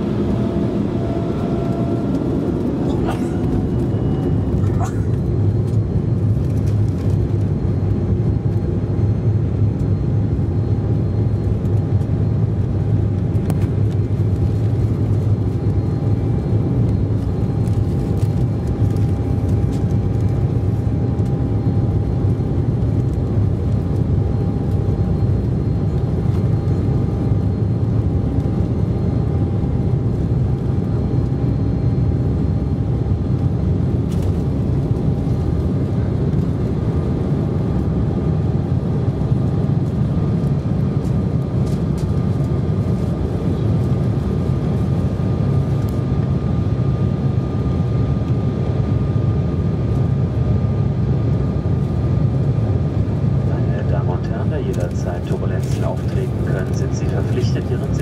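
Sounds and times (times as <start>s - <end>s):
jet engines rumbling in cabin: 0.0s - 58.0s
thin steady whine: 52.1s - 58.0s.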